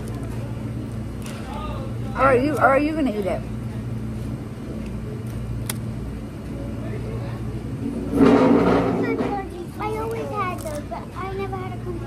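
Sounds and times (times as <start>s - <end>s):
restaurant background hum: 0.0s - 12.0s.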